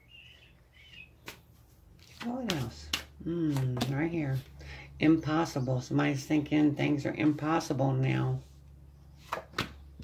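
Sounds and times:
faint bird-like chirps: 0.0 - 1.2.

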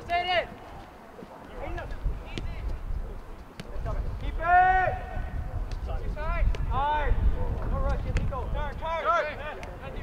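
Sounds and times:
wind rumble on microphone: 1.5 - 10.0.

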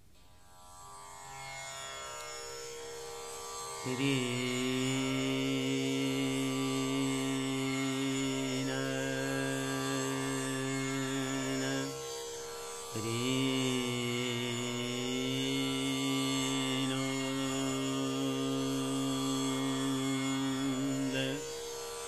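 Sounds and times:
tanpura drone: 0.2 - 22.0
man singing slowly: 3.8 - 12.1, 12.9 - 22.0.

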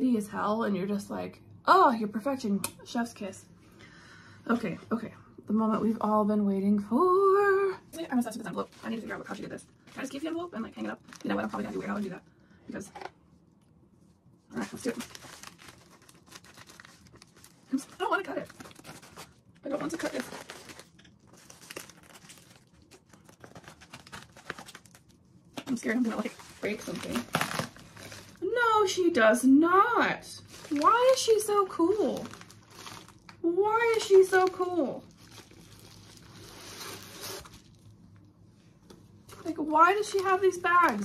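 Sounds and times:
plastic bag crinkling: 8.0 - 12.2, 14.6 - 28.6, 30.4 - 37.9, 39.3 - 41.0
plastic mailer rustling: 8.0 - 12.2, 14.6 - 28.6, 30.4 - 37.7, 39.3 - 41.0.

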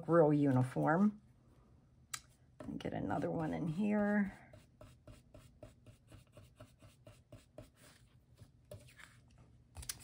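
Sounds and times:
brush strokes on cardstock: 3.7 - 9.2.

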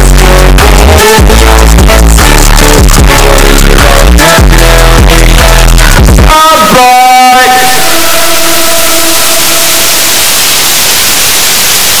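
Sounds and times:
held musical tones: 2.8 - 10.0
white-noise static hiss: 8.3 - 12.0.

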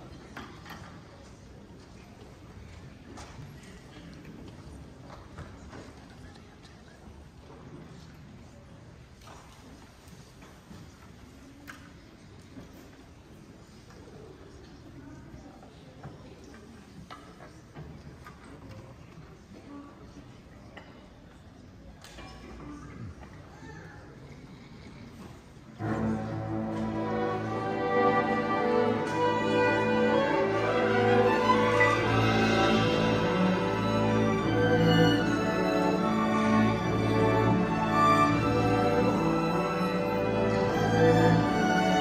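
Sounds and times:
faint low murmur: 0.0 - 42.0
low hall rumble: 25.8 - 42.0.

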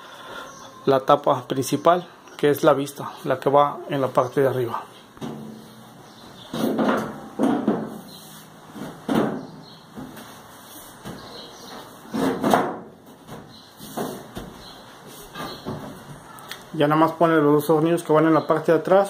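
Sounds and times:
metal panel knocks and scrapes: 6.5 - 8.0.

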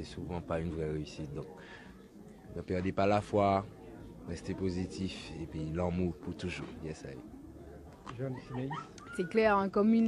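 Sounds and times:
spoken conversation: 0.0 - 10.0.

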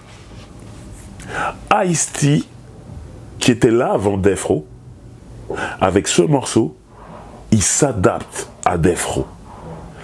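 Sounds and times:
man speaking: 1.6 - 2.6, 3.4 - 4.7, 5.8 - 6.8, 7.5 - 9.4
soft breathy sound: 9.4 - 10.0.

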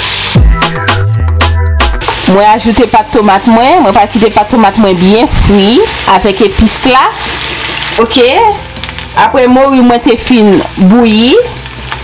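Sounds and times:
oil sizzling in a frying pan: 0.0 - 0.6, 2.0 - 12.0.

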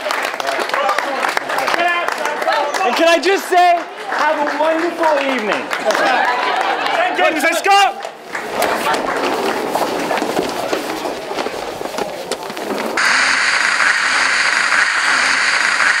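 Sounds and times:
crowd voices: 0.0 - 13.0
scuffling: 8.1 - 13.0
tv static hiss: 13.0 - 16.0.

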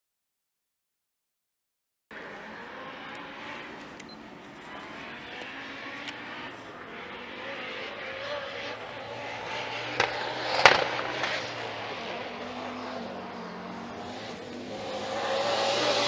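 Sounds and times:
distant rally car engine: 2.1 - 16.0
open-air background noise: 2.1 - 16.0.

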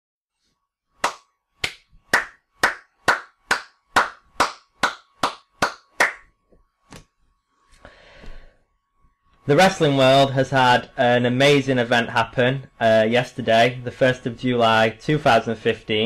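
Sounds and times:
person clapping hands: 1.0 - 6.3.

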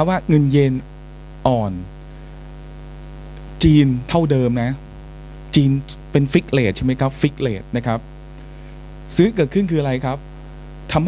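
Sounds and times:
man speaking: 0.0 - 1.9, 3.6 - 8.1, 9.1 - 10.2
electrical mains hum: 0.0 - 11.0.

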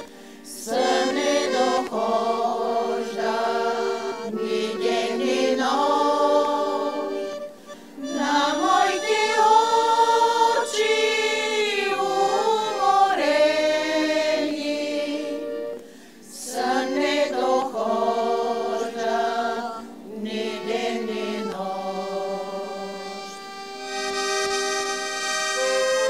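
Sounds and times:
women's vocal group singing: 0.0 - 23.5.

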